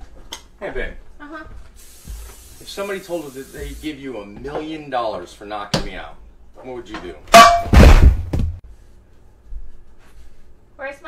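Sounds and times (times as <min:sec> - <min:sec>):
metal frying pan clanging: 0:07.3 - 0:07.8.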